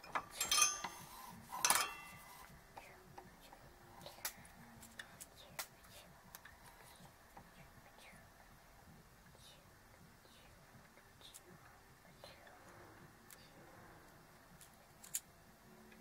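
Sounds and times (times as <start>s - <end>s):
metallic clinks and rattles: 0.0s - 2.2s.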